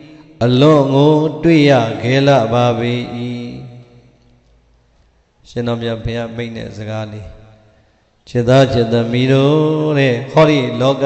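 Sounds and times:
man chanting: 0.0 - 4.2, 5.4 - 11.0.

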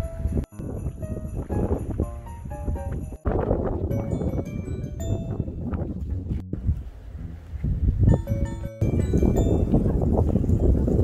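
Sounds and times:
strong wind buffeting microphone: 0.0 - 11.0.

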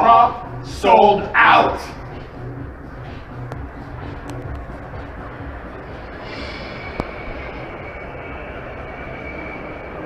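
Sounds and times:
rumbling outdoor background noise: 0.0 - 10.0
faint high whine: 3.5 - 10.0.

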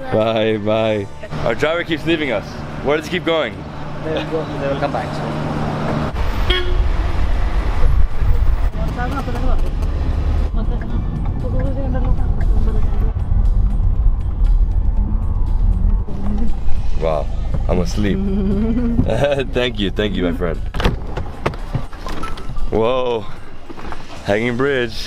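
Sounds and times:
road and engine rumble: 0.0 - 25.0
vehicle horns tooting: 6.2 - 7.2.

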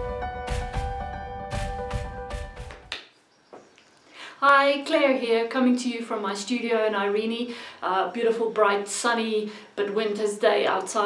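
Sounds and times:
theme music with steady beat: 0.0 - 2.9.

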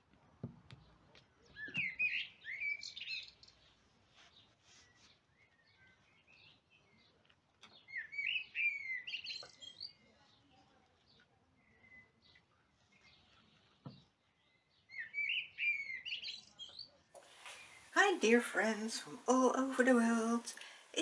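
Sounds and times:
songbird warbling chirps: 0.8 - 19.2.

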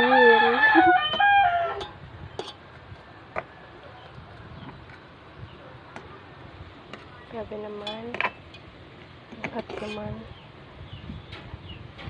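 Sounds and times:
rooster crowing: 0.0 - 1.8.

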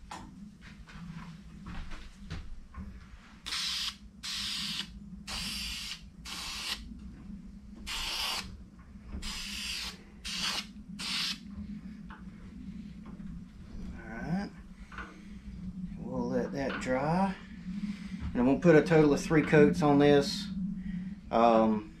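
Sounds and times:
aerosol spray can hissing: 3.5 - 6.8, 7.9 - 8.5, 9.2 - 11.4.

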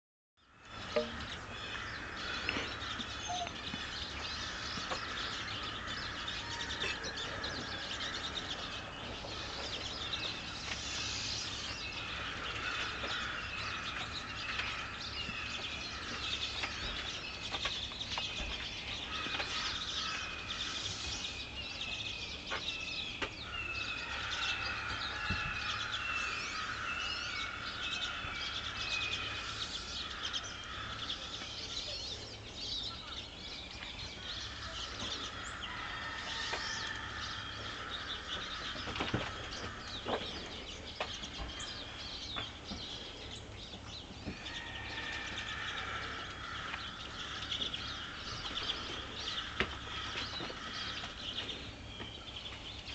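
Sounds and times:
crows cawing: 0.6 - 17.6, 18.8 - 21.4, 23.4 - 31.9, 34.2 - 40.6, 44.2 - 51.7
short falling bird calls: 0.7 - 17.1, 44.3 - 51.7
high bird twittering: 0.8 - 33.1.

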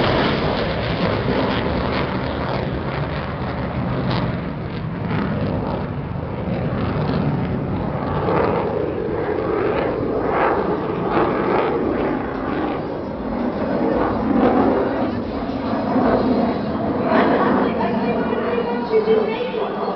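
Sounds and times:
fighter jet flying past: 0.0 - 19.9.

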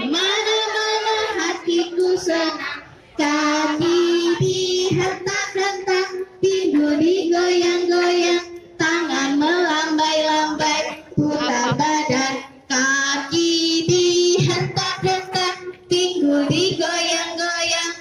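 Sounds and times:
children singing in unison: 0.0 - 18.0.

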